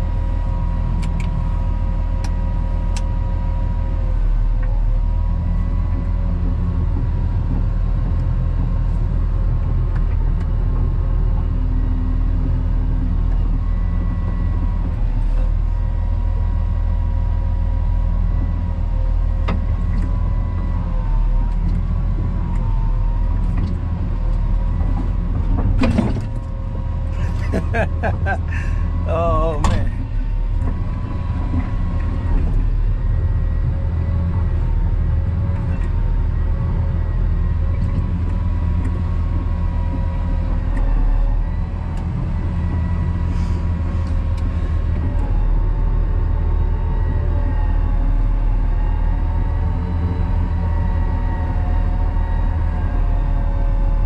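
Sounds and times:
diesel engine humming: 0.0s - 54.0s
high whine: 27.1s - 34.6s.

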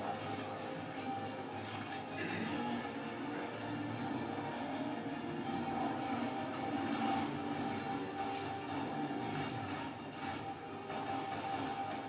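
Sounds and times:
action film soundtrack: 0.0s - 12.0s.

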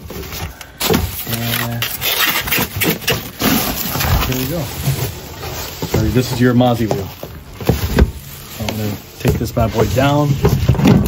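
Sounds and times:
plastic bag and foam rustling: 0.0s - 11.0s.

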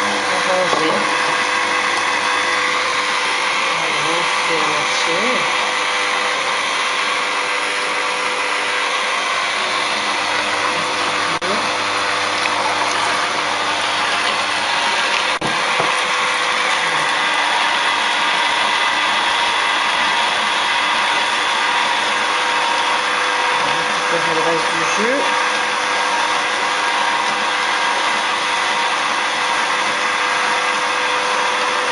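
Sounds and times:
juicer motor whirring: 0.0s - 31.9s.

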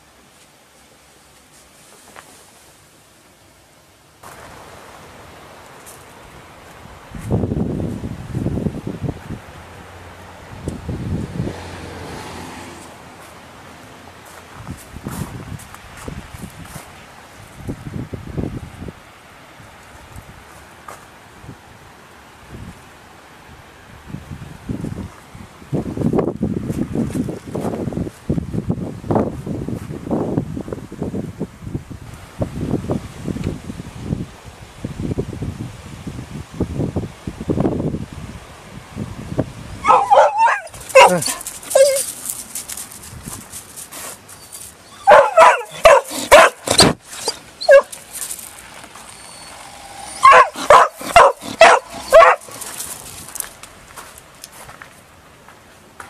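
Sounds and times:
dog barking and yipping: 39.8s - 42.2s, 44.8s - 48.1s, 49.2s - 52.8s.

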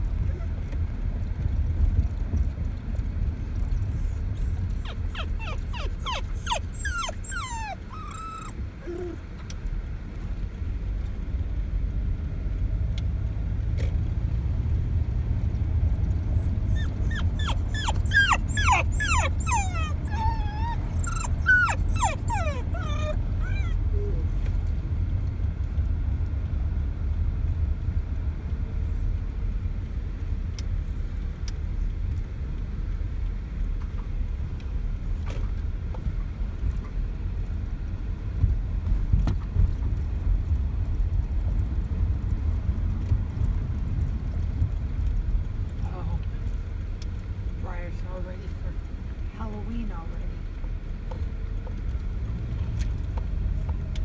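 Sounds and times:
car road rumble: 0.0s - 54.0s
dog whining and yipping: 4.0s - 9.2s, 16.4s - 24.4s.

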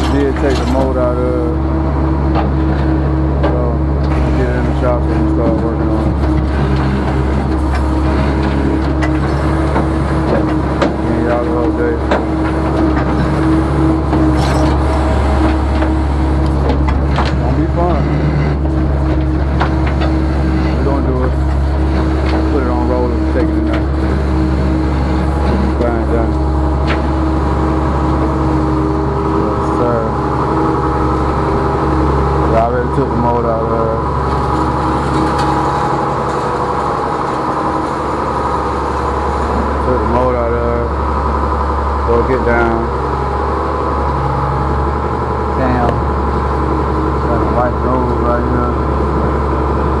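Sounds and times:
truck engine idling: 0.0s - 50.0s
voices talking: 0.0s - 50.0s.

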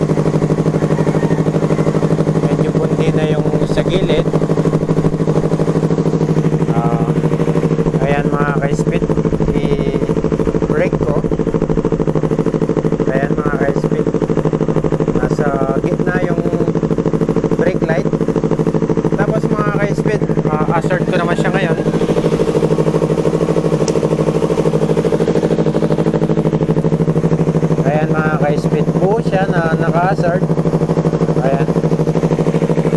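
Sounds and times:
motorcycle engine idling: 0.0s - 32.9s.

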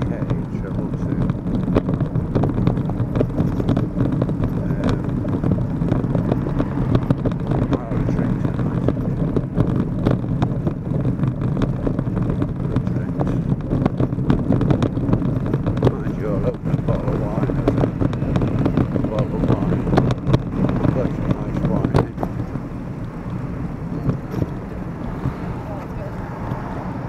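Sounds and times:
small knocks and rattles: 0.0s - 26.9s
road traffic: 0.0s - 27.0s
wind rumble on microphone: 0.0s - 27.0s.

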